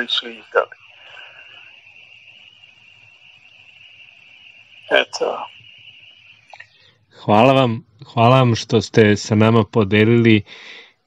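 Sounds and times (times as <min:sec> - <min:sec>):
high-pitched background tone: 0:00.0 - 0:08.6
faint low hum: 0:00.0 - 0:10.9
person speaking: 0:04.9 - 0:05.6.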